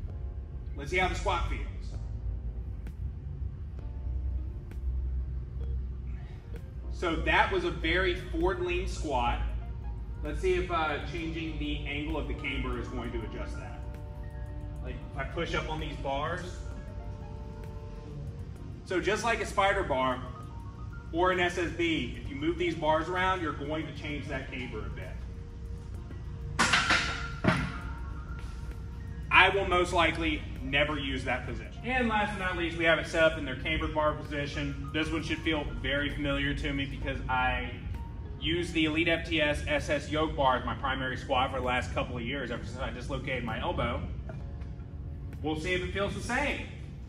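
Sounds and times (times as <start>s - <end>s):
low rumble: 0.0s - 39.0s
background music: 0.0s - 47.0s.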